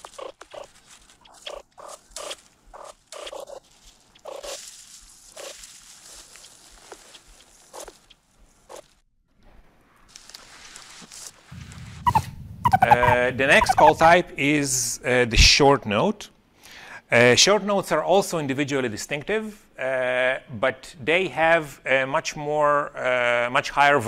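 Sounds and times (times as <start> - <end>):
rustling in dry grass: 0.0 - 13.9
meerkat soft calls: 12.1 - 14.0.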